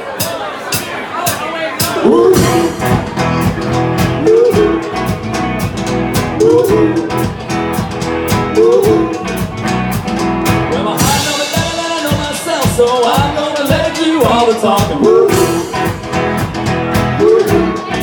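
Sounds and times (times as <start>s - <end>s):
drums steady beat: 0.0s - 18.0s
guitar with bent notes: 1.8s - 18.0s.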